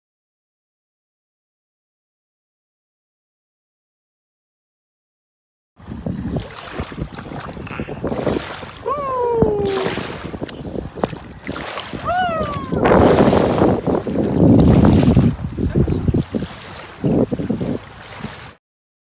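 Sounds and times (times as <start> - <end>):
wind on microphone: 5.8 - 18.6
water splashing around feet: 6.2 - 18.6
high voice calling out: 7.6 - 8.0, 8.8 - 10.2, 12.0 - 13.1.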